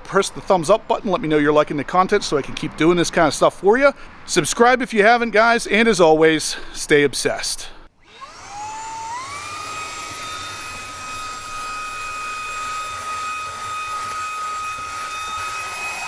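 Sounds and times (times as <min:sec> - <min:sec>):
handheld vacuum motor whine: 0:08.0 - 0:16.0.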